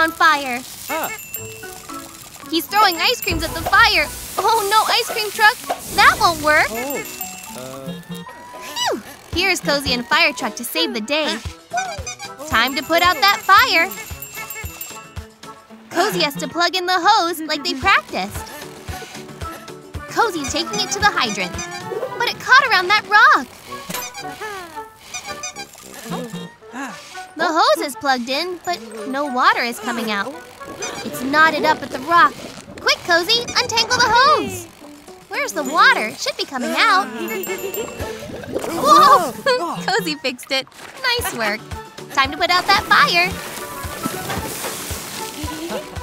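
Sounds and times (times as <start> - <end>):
water hose sizzling hiss: 0.0 - 7.8, 42.6 - 46.0
cartoon background music: 0.0 - 46.0.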